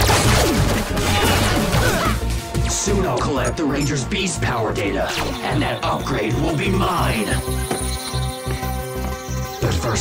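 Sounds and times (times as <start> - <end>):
fast action music: 0.0 - 10.0.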